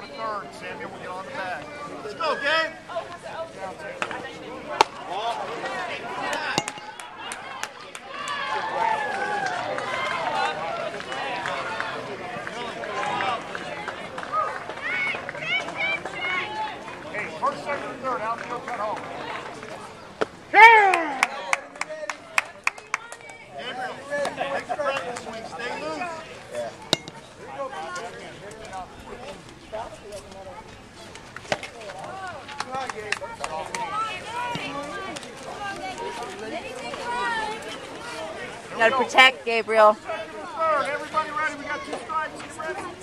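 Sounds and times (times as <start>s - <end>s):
players and spectators chattering: 0.0s - 43.0s.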